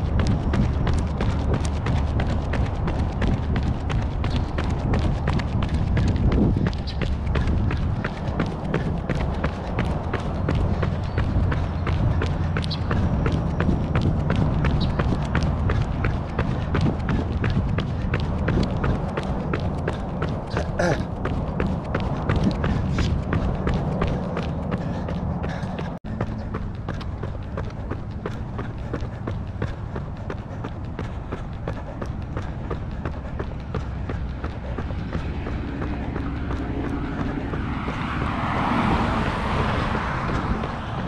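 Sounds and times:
low rumble of air noise: 0.0s - 41.0s
running footsteps on asphalt: 0.0s - 41.0s
rush of noise: 0.0s - 41.0s.

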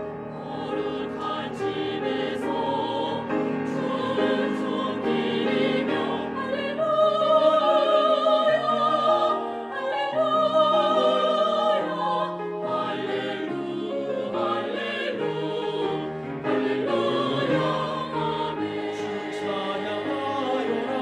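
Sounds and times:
vocal ensemble singing gospel: 0.3s - 21.0s.

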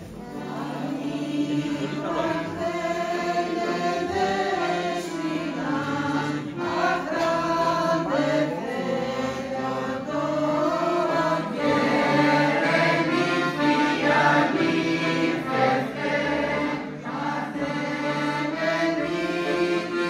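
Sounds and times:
accordion: 0.0s - 20.0s
women's choir singing: 0.0s - 20.0s.

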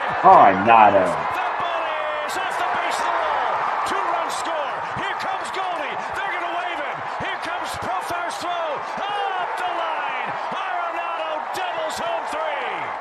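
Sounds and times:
crowd shouting: 0.0s - 13.0s
people clapping: 0.0s - 13.0s.

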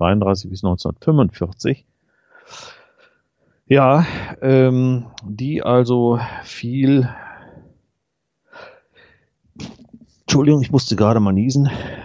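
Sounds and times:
short breathy sounds: 2.1s - 3.2s.

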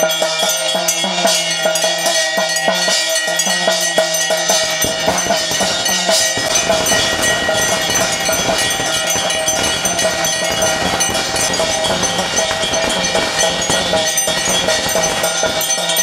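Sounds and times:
fast ritual percussion beats: 0.0s - 16.0s
temple bells ringing: 0.0s - 16.0s.

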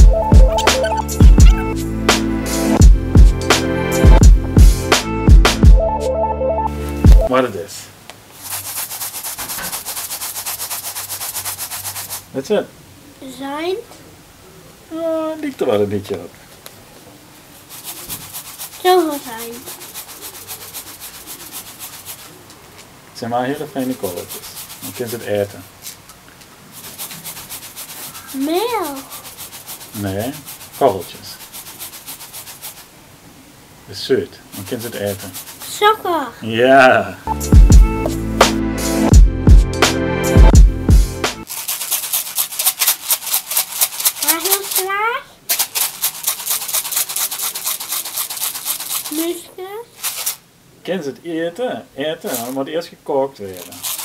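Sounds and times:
granules rattling in plastic container: 41.5s - 44.9s, 45.5s - 49.4s, 50.0s - 50.4s, 52.3s - 52.6s, 53.5s - 54.0s.

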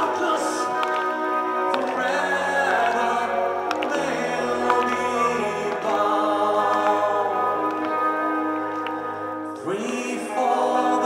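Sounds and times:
live band playing slow ballad: 0.0s - 11.0s.

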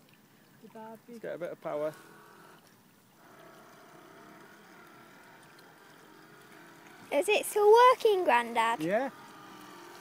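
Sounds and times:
model boat motors whining: 1.4s - 10.0s.

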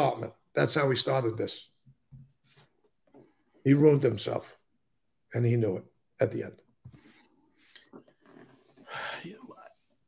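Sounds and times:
faint breathing: 8.6s - 9.8s.

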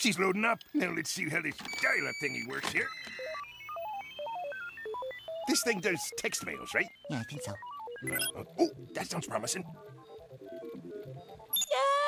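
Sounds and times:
dial-up modem beeps: 0.2s - 12.0s.

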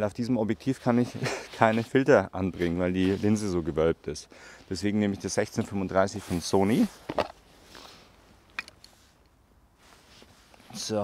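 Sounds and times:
faint rustling: 0.6s - 11.0s.

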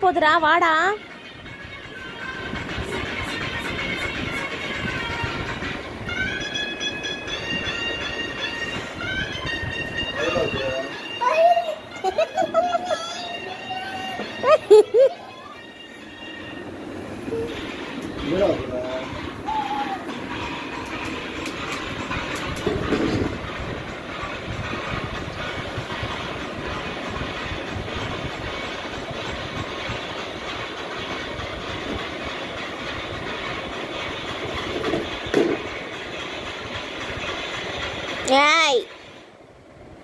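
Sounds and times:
faint high ring: 15.2s - 17.6s
rattling rumbling noise: 16.0s - 39.2s.

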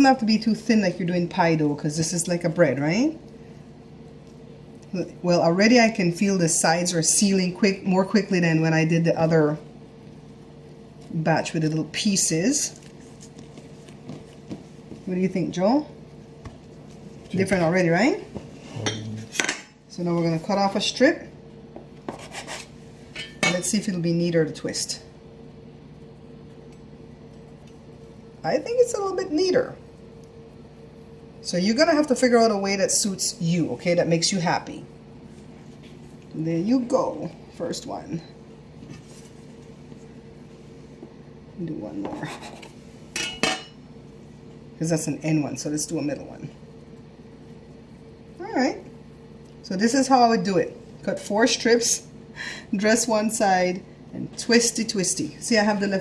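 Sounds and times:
faint room hum: 0.0s - 56.0s
fingers rubbing and tapping dough: 12.8s - 15.4s.

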